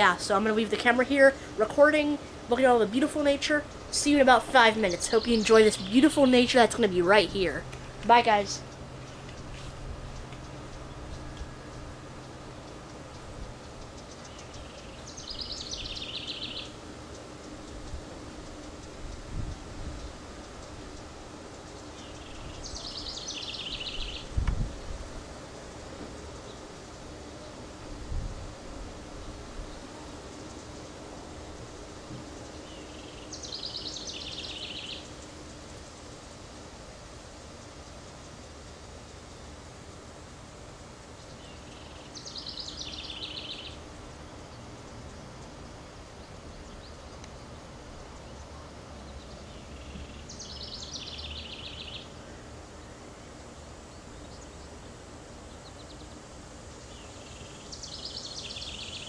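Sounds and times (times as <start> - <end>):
songbird trilling song: 0.0 - 25.0, 29.2 - 35.9, 41.1 - 59.0
steady low hum: 0.0 - 59.0.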